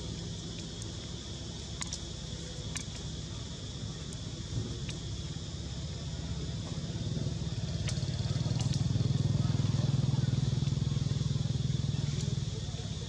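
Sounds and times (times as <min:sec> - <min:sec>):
vehicle engine passing by: 0:06.5 - 0:13.0.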